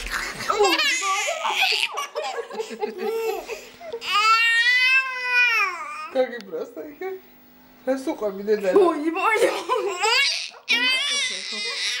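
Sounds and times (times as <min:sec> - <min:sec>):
baby laughing: 0:00.0 - 0:06.1, 0:09.2 - 0:12.0.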